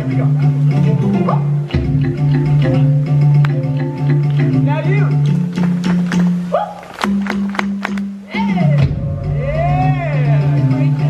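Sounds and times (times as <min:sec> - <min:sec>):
voices whooping: 0:06.5 - 0:07.1.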